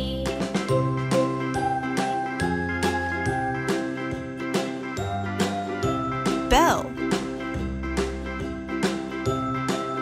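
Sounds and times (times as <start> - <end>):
children's instrumental music: 0.0 - 10.0.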